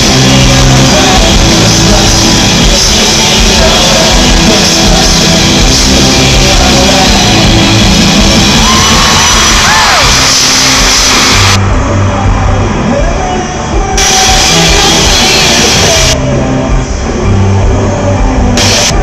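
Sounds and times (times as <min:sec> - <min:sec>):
live pop-rock band playing: 0:00.0 - 0:19.0.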